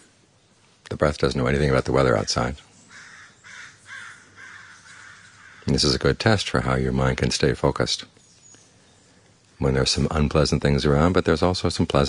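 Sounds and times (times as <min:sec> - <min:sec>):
bird calling: 0:00.0 - 0:11.5.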